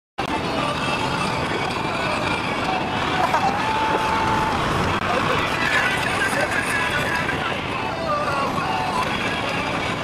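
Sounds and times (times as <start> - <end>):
road noise inside van: 0.2 - 10.0.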